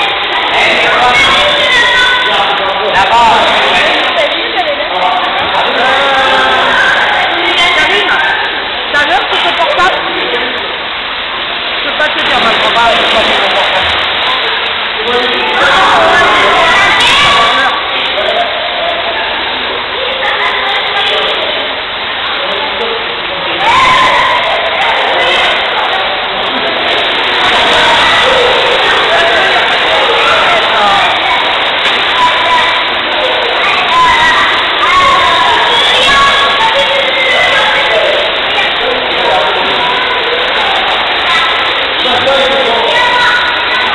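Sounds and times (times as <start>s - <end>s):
children shouting in a pool: 0.0s - 8.7s, 12.4s - 43.9s.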